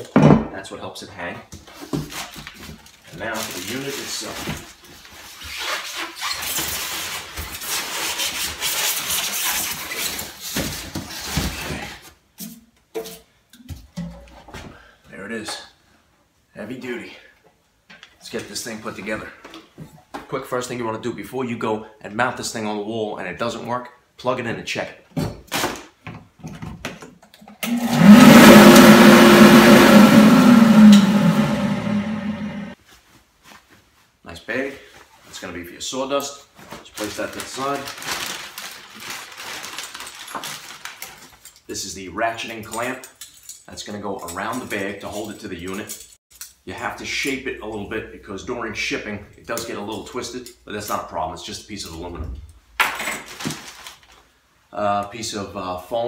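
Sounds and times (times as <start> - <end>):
plastic wrap and cardboard rustling: 1.6 - 12.2, 34.8 - 41.6, 53.1 - 54.5
blower motor humming: 27.6 - 32.8.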